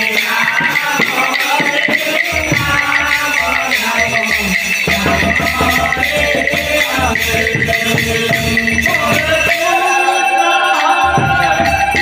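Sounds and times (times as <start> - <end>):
devotional melody over loudspeaker: 0.0 - 12.0
hand percussion beat: 0.0 - 12.0.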